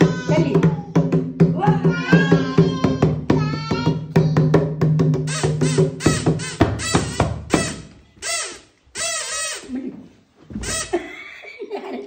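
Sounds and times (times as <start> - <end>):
toddler squealing: 1.9 - 4.4, 5.3 - 9.8, 10.6 - 11.1.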